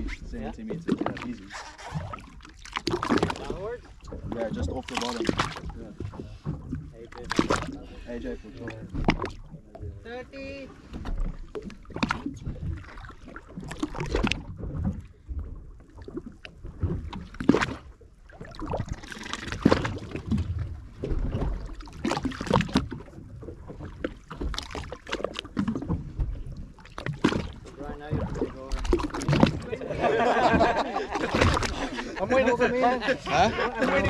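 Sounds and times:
water lapping against boat hull: 0:00.0 - 0:34.0.

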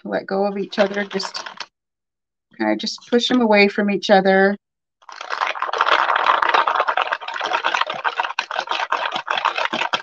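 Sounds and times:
wooden beads rattling in a bowl: 0:00.5 - 0:01.7, 0:05.0 - 0:10.0.

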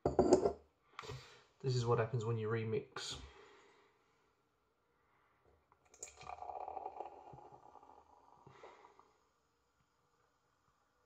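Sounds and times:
beer pouring and frothing: 0:05.8 - 0:09.0.

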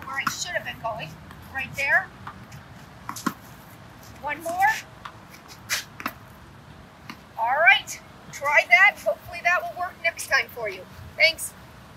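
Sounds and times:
racket striking tennis ball: 0:00.0 - 0:03.5
shoe scuffing on court: 0:02.2 - 0:06.2.

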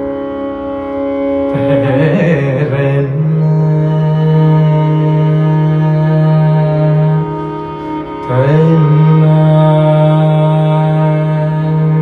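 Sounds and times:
classical raga with long held notes: 0:00.0 - 0:12.0.

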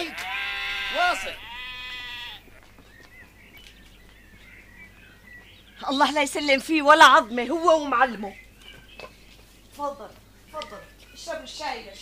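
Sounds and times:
livestock bleat: 0:00.0 - 0:02.7.

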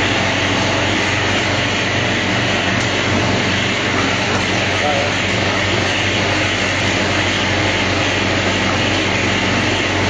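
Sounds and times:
packaging machine humming: 0:00.0 - 0:10.0.

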